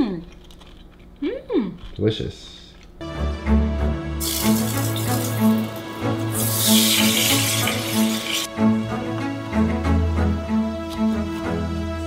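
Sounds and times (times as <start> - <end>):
background music: 3.0 - 12.0
meat sizzling in a frying pan: 4.2 - 5.7, 6.3 - 8.5.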